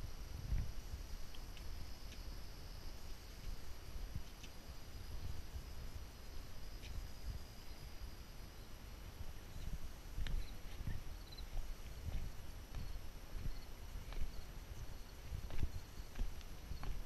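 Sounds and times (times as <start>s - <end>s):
footsteps on wooden boards: 11.8s - 17.0s.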